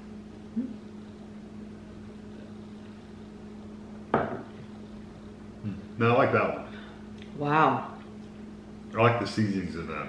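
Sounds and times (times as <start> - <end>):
low room hum: 0.0 - 10.0
glass set down on wooden table: 4.1 - 4.6.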